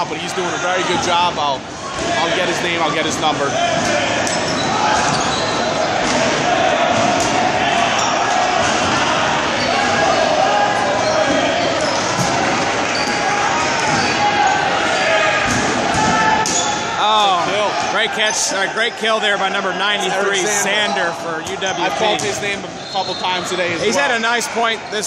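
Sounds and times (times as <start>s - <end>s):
players shouting: 0.0s - 25.0s.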